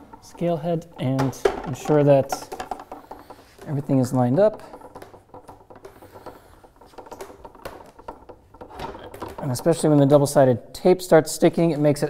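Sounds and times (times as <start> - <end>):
metal handrail clicking and tapping: 0.0 - 10.4.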